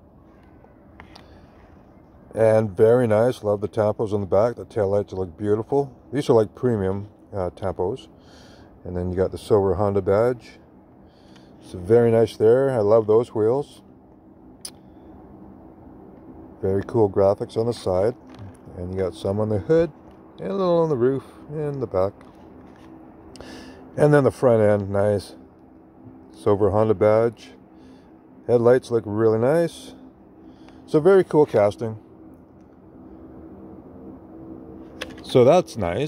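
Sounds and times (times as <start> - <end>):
faint background hum: 0.0 - 36.0.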